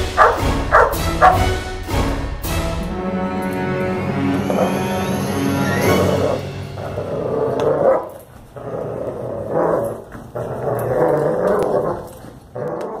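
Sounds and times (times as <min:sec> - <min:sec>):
dog growling: 0:06.1 - 0:13.0.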